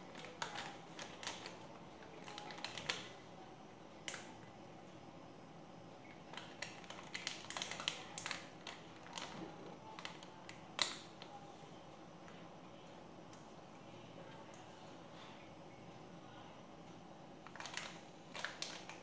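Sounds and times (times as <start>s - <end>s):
plastic packet crackling: 0.0s - 3.1s, 6.3s - 11.2s, 17.4s - 19.0s.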